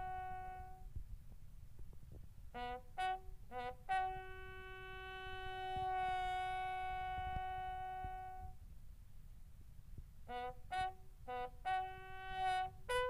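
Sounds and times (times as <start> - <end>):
bugle call: 0.0 - 0.8, 2.6 - 8.6, 10.3 - 13.0.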